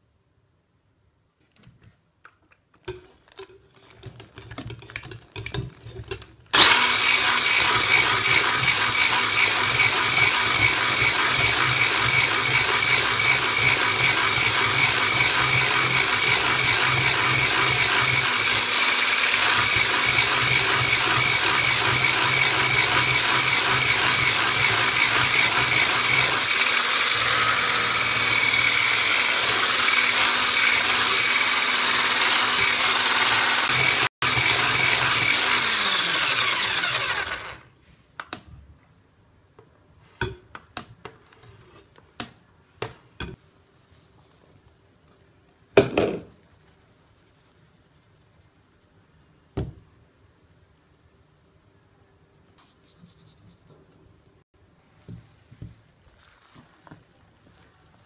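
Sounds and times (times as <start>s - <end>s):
whisk beaters whipping eggs: 2.9s - 37.6s
electric hand mixer whining: 6.6s - 37.7s.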